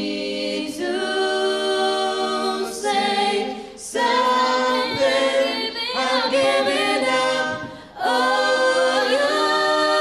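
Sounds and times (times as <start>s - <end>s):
a cappella group singing chords: 0.0s - 10.0s.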